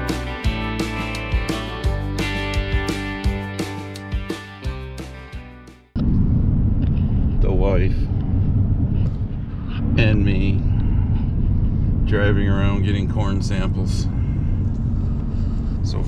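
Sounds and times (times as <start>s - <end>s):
guitar music: 0.0s - 6.0s.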